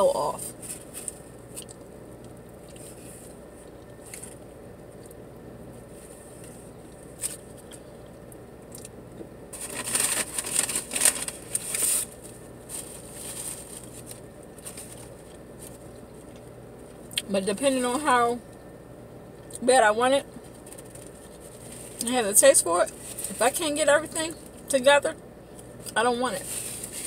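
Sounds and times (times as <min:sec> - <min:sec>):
paper bag rustling: 0:09.5 - 0:16.4, 0:22.9 - 0:23.7, 0:26.3 - 0:27.0.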